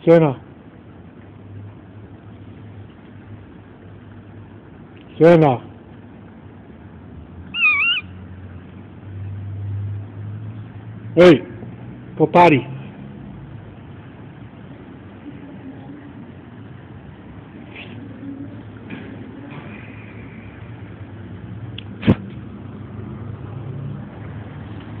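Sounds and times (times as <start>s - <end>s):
dog whining: 7.5s - 8.2s.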